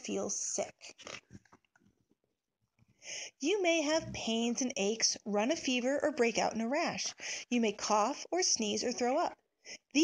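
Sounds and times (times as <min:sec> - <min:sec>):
book page turning: 0:00.9 - 0:01.7.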